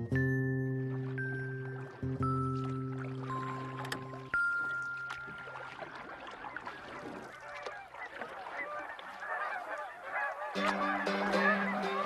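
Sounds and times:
music with held notes: 0.0s - 5.4s, 10.6s - 12.0s
geese honking: 5.9s - 12.0s.

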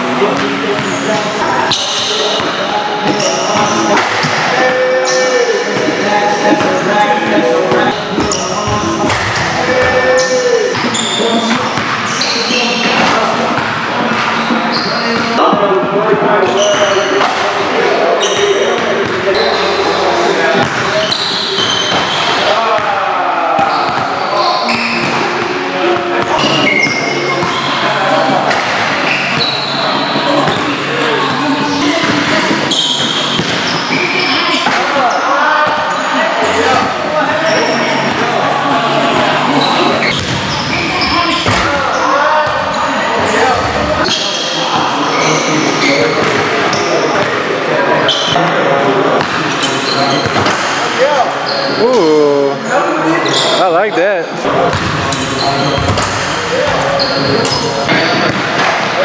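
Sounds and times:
indistinct voices: 0.0s - 59.0s
basketballs bouncing on hardwood: 54.7s - 55.0s.

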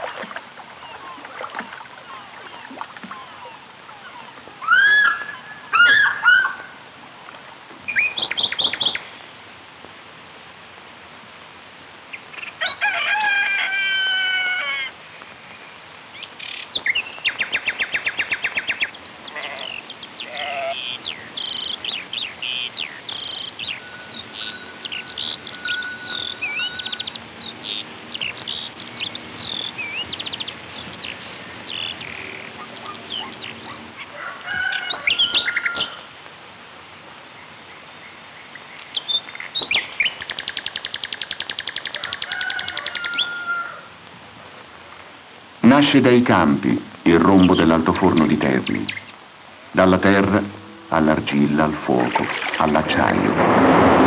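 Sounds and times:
birds chirping and trilling: 0.0s - 6.8s, 7.8s - 9.3s, 12.1s - 36.1s, 37.3s - 43.8s, 45.6s - 49.2s
long bird call: 0.0s - 6.8s, 16.2s - 36.1s, 37.4s - 43.9s.

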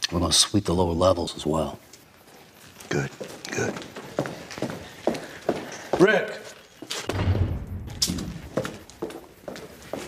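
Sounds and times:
footsteps on concrete floor: 2.3s - 10.0s.

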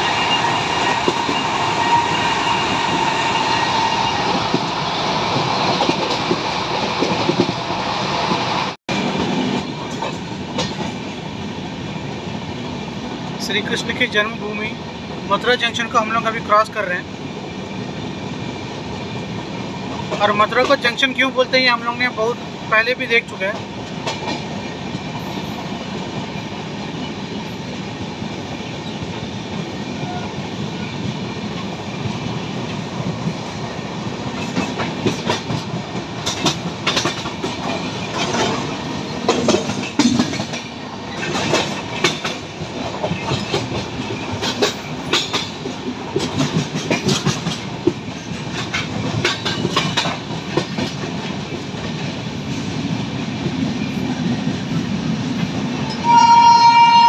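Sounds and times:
train horn: 0.0s - 4.4s, 56.0s - 57.0s
train rumbling on tracks: 0.0s - 57.0s
wheels clicking over rail joints: 9.2s - 11.2s, 34.2s - 54.6s.

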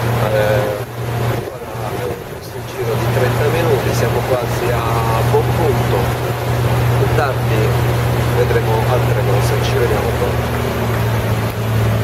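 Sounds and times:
voices talking: 0.0s - 11.5s
boat engine humming: 0.0s - 12.0s.

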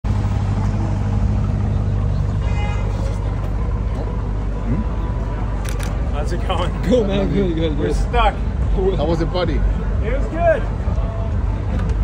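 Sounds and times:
car engine idling: 0.0s - 12.0s
street noise: 0.0s - 12.0s.

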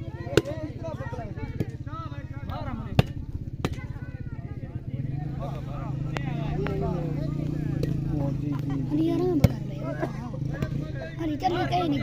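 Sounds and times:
voices of players and onlookers: 0.0s - 12.0s
volleyball hand slaps: 2.4s - 3.9s.

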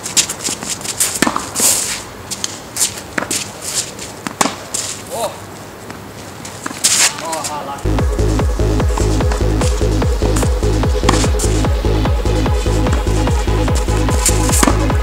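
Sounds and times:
shoes scuffing on court: 0.0s - 7.9s, 8.8s - 15.0s
tennis ball bounces: 0.2s - 1.8s, 3.1s - 3.4s, 4.2s - 4.8s, 10.4s - 11.4s, 14.2s - 15.0s
racket striking ball: 0.2s - 2.5s, 4.2s - 4.9s, 10.4s - 11.5s, 13.8s - 15.0s.

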